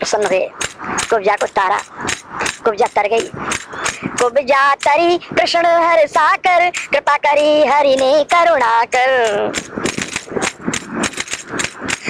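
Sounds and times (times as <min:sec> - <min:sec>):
fast percussion strokes: 0:00.0 - 0:12.0
singing: 0:04.2 - 0:09.5.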